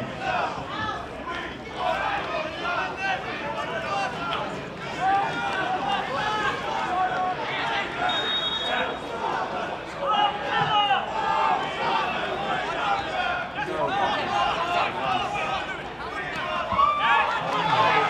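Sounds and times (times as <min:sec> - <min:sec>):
people talking and calling out: 0:00.0 - 0:18.0.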